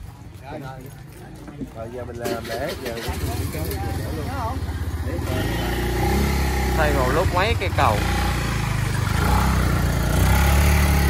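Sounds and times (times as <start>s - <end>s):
people talking: 0.3s - 8.1s.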